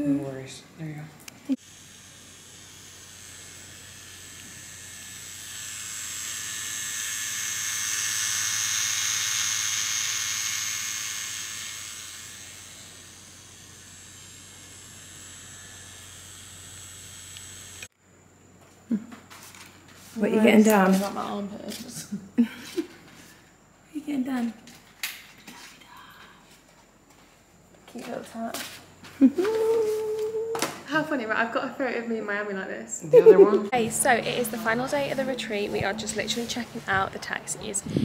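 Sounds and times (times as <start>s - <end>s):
tattoo machine buzzing: 1.5s - 17.9s, 33.7s - 38.0s.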